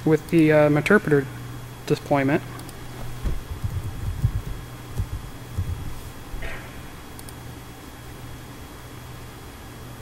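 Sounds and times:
keyboard typing: 3.5 - 5.8.

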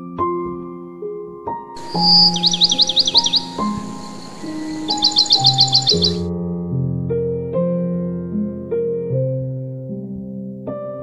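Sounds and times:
bird chirping trill: 1.8 - 6.3
solo piano music: 1.8 - 6.3.

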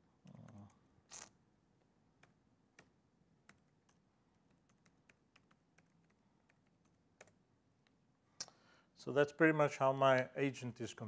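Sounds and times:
typing on computer keyboard: 3.5 - 7.4.

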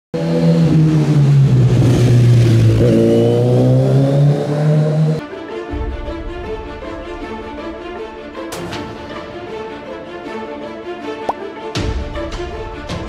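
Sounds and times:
engine running at high revs: 0.2 - 5.2
music: 4.7 - 13.0.

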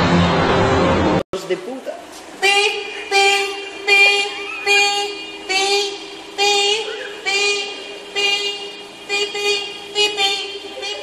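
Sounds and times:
car horn blasts: 2.4 - 11.0.

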